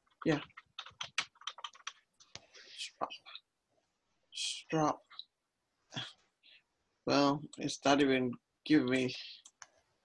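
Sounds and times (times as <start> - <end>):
typing on computer keyboard: 0.4 - 2.0.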